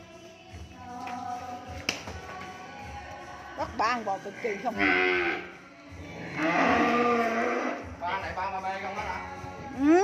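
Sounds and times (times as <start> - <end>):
cow mooing: 4.8 - 5.5, 6.2 - 7.9.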